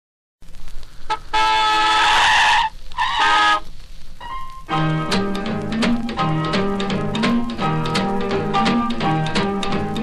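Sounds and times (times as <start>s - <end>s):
record surface hiss: 0.4s - 10.0s
two-tone car horn honking: 1.1s - 3.6s.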